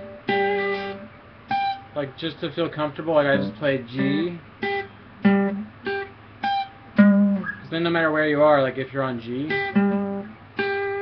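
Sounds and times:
acoustic guitar notes: 0.0 - 11.0.

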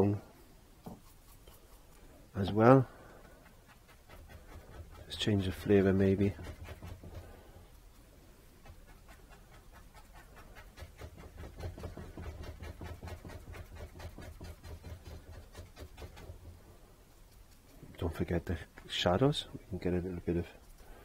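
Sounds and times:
low room hum: 0.0 - 21.0
brush scrubbing on canvas: 0.9 - 18.7.

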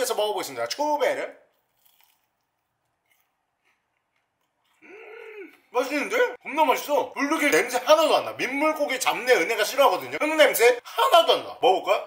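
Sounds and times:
faint biting and chewing: 1.5 - 5.7.

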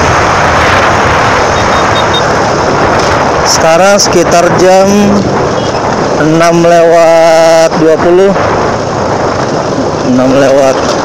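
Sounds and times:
road and engine noise: 0.0 - 11.0
wind rush on microphone: 0.0 - 11.0.

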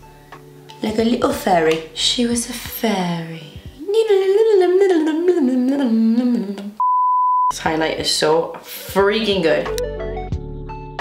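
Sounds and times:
woman speaking: 0.8 - 5.4, 7.5 - 9.8
woman humming: 3.8 - 6.8
censor bleep: 6.8 - 7.6.

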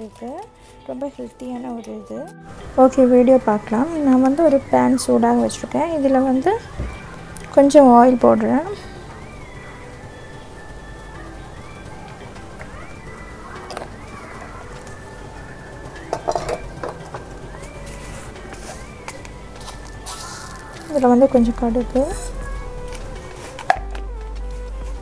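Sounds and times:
quiet background music: 0.0 - 25.0.

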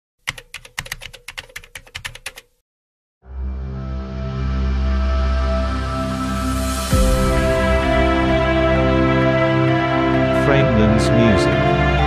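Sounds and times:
keyboard key clicks: 0.3 - 2.5.

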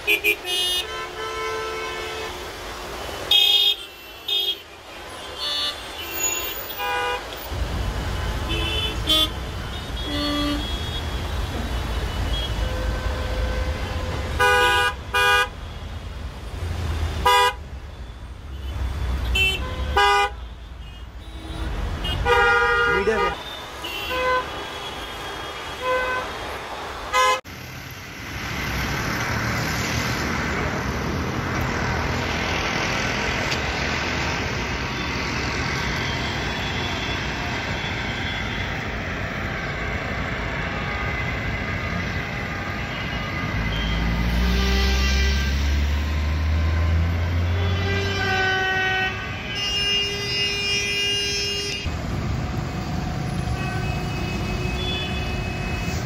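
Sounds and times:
steady traffic noise: 0.0 - 56.0
car horns honking: 8.4 - 15.6, 17.2 - 17.6, 18.5 - 26.4, 27.1 - 27.4, 47.3 - 51.9.

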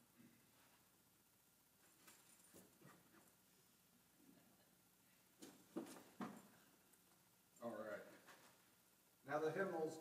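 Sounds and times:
faint rustles and soft knocks: 0.2 - 1.0, 1.8 - 8.9.

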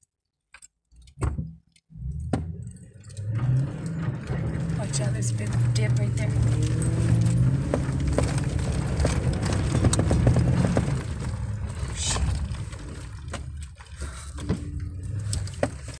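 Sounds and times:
engine and tyre rumble: 1.9 - 16.0.

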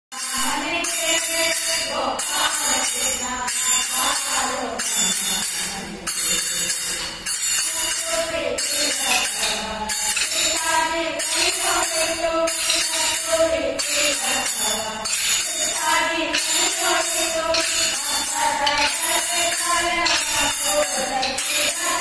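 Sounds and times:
women singing: 0.2 - 22.0
wooden sticks clacking: 8.6 - 22.0.

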